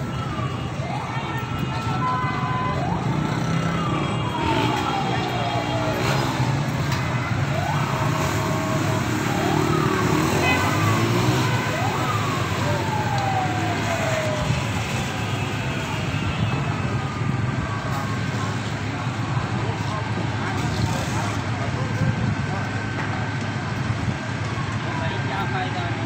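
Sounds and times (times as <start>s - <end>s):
crowd chatter: 0.0s - 26.0s
fire engine siren wailing: 0.0s - 26.0s.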